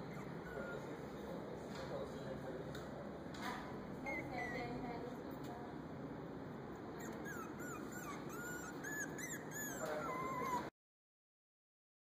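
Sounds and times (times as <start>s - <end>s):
puppy whimpering: 0.0s - 1.3s, 4.1s - 4.8s, 7.0s - 10.8s.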